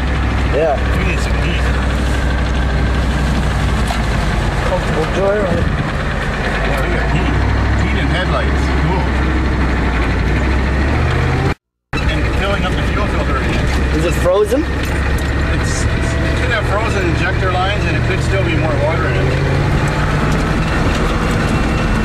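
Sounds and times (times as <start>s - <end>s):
truck engine running: 0.0s - 22.0s.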